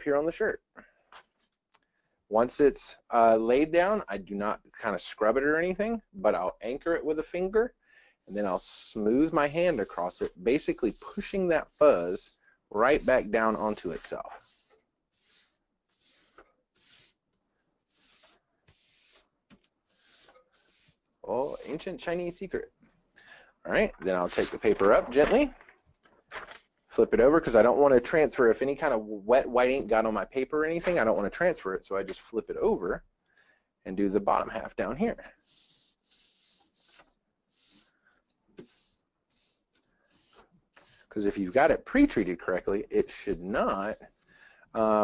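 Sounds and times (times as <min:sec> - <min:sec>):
hand swishing over paper: 0:08.3 - 0:17.3, 0:17.9 - 0:21.9, 0:35.4 - 0:38.0, 0:38.6 - 0:41.2.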